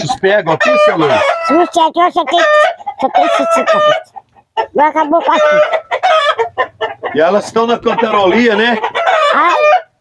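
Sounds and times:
chickens cackling: 0.0 - 10.0.

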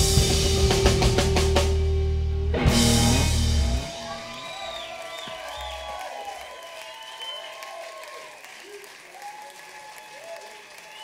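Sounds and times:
live blues-rock band: 0.0 - 4.4
electric guitar chord ringing: 0.0 - 4.5.

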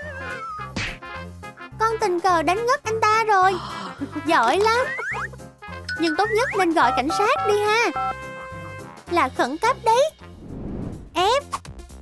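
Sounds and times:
short swish: 10.4 - 11.2.

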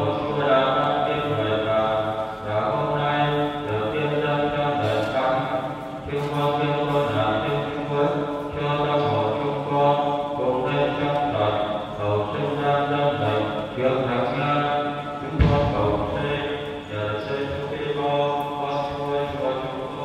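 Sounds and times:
man chanting a sung prayer: 0.0 - 20.0.

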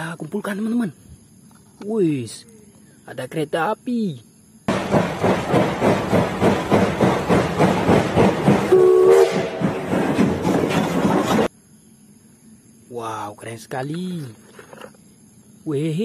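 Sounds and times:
steam locomotive chuffing: 4.7 - 11.5
steam whistle blast: 8.7 - 9.6.

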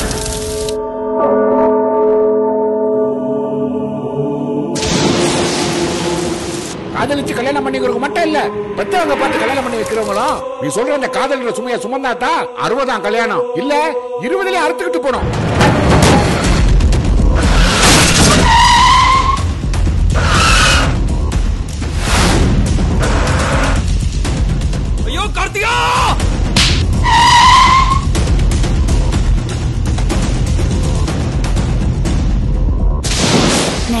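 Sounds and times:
tyre screeching: 20.2 - 21.0.

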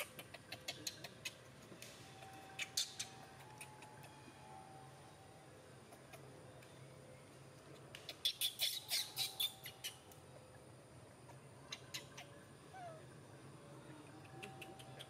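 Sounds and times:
sharp animal chirps: 2.2 - 4.2, 8.1 - 10.1.

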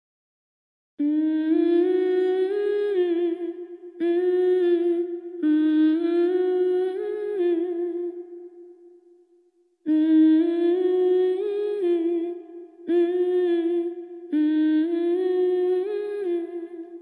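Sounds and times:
woman humming a melody: 1.0 - 8.2, 9.9 - 17.0.

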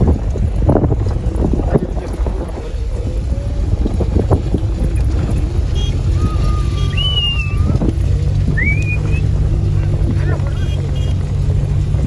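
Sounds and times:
vehicle driving on dirt track: 0.0 - 12.0
wind on microphone: 0.0 - 12.0.

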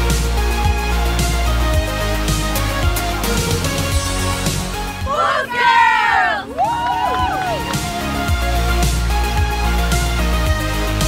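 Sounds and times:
women shouting a cheer: 5.0 - 7.7.

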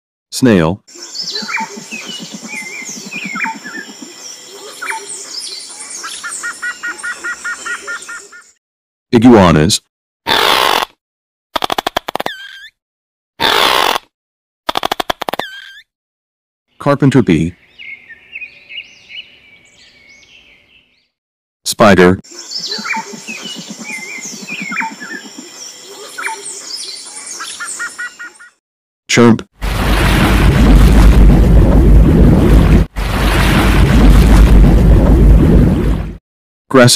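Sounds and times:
birds chirping and calling: 0.9 - 8.6, 17.3 - 21.1, 22.3 - 28.6
fast sharp clicks: 11.6 - 12.4, 14.7 - 15.5.

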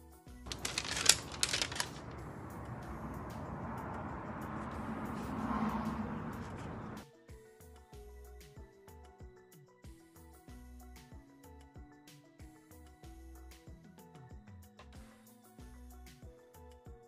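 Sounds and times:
paper rustling and crinkling: 0.5 - 2.3.

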